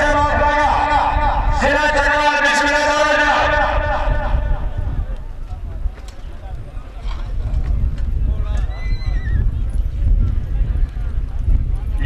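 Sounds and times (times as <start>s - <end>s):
steady low rumble: 0.0s - 8.5s.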